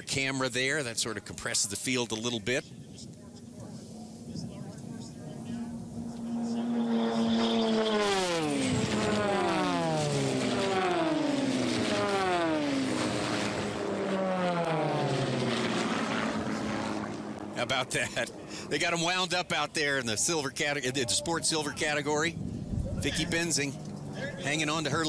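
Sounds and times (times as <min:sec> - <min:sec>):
propeller planes flying past: 0:00.0 - 0:25.0.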